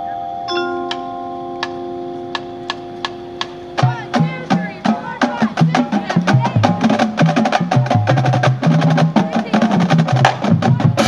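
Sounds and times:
marching band holding a chord: 0:00.5 - 0:11.0
sharp percussion clicks: 0:00.8 - 0:11.0.

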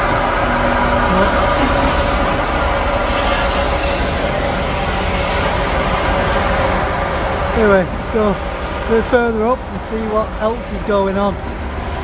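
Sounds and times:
excavator engine and hydraulics: 0:00.0 - 0:12.0.

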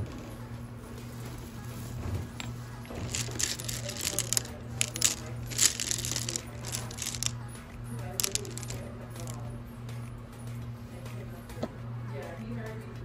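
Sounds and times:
stones clinking together: 0:02.4 - 0:07.3, 0:08.2 - 0:09.4.

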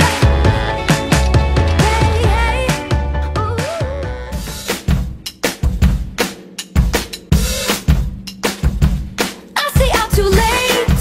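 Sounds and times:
drum kit playing a beat: 0:00.0 - 0:11.0.

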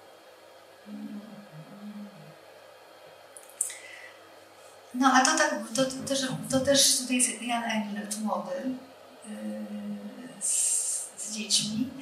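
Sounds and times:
faint room hiss: 0:00.0 - 0:12.0
woman humming softly: 0:00.8 - 0:02.4, 0:09.3 - 0:11.2.

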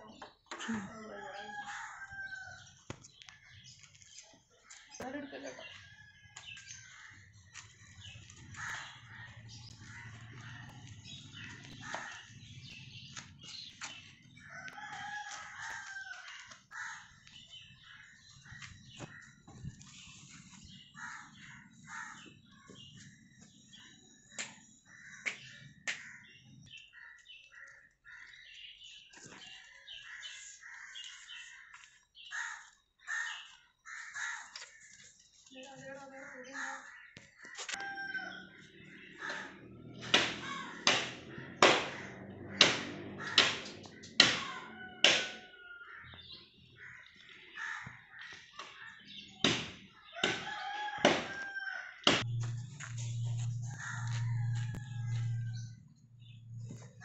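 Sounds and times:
birds chirping and calling: 0:00.0 - 0:57.0
low rumble: 0:52.2 - 0:57.0.

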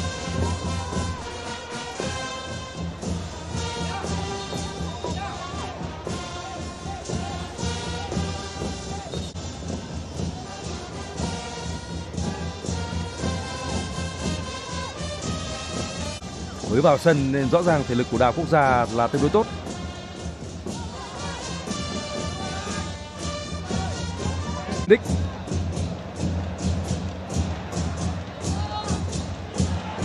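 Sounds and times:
crowd chanting: 0:00.0 - 0:09.4, 0:10.2 - 0:16.3, 0:18.9 - 0:30.0
supporters drumming: 0:00.0 - 0:30.0.

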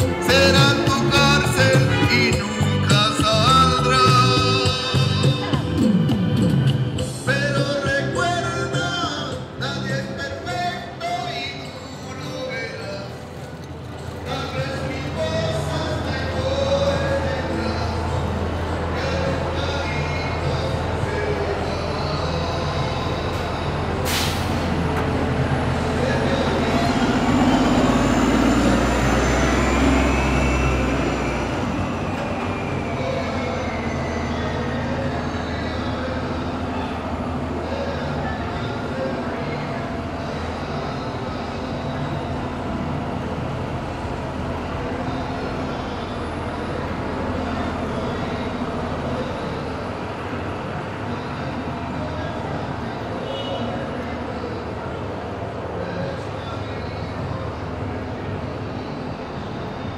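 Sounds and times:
elevated train rumbling: 0:00.0 - 0:59.9
street traffic noise: 0:00.0 - 0:59.9
train wheel squeal: 0:27.2 - 0:35.8.

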